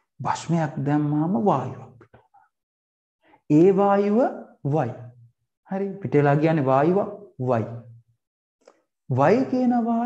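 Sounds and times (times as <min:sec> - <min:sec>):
man lecturing: 0:03.5 - 0:05.1, 0:05.7 - 0:07.8, 0:09.1 - 0:10.0.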